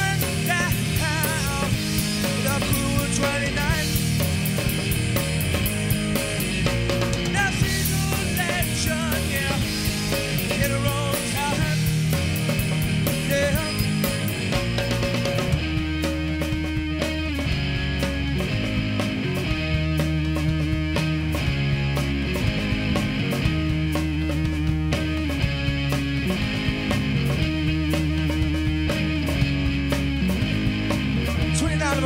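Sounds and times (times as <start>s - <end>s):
bass guitar: 0.0s - 32.0s
electric guitar riff: 0.0s - 32.0s
steady drum beat: 0.0s - 32.0s.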